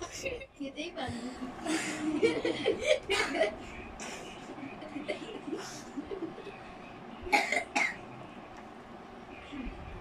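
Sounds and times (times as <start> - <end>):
child coughing: 7.3 - 8.0.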